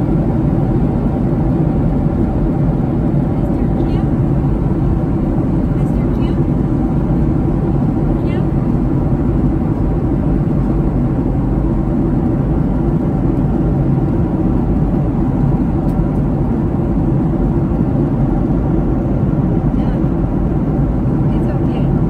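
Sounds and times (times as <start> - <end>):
airplane cabin drone: 0.0 - 22.0.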